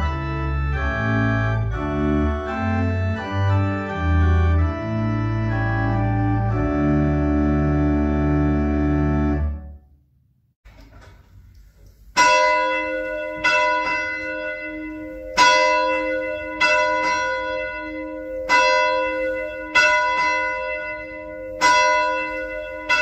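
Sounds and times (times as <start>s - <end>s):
church bell ringing: 12.2s - 23.0s.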